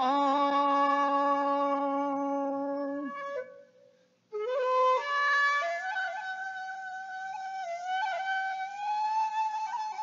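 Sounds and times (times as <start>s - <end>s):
man singing a long note: 0.0s - 3.2s
flute: 0.0s - 10.0s.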